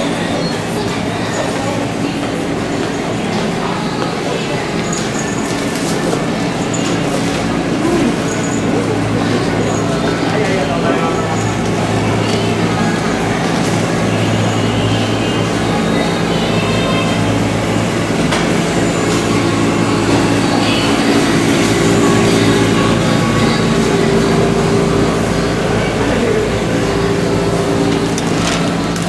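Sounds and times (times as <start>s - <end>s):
low mechanical hum: 0.0s - 29.0s
shoppers' voices: 0.0s - 29.0s.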